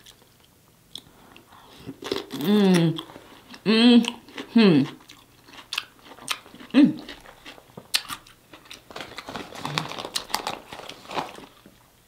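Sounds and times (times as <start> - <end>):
chewing food: 0.0 - 11.7.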